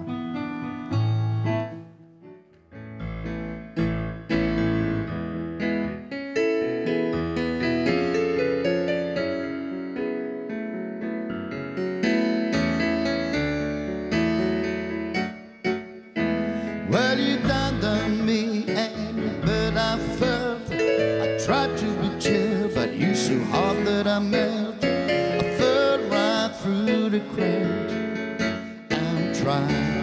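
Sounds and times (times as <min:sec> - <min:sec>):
grand piano chords: 0:00.0 - 0:30.0.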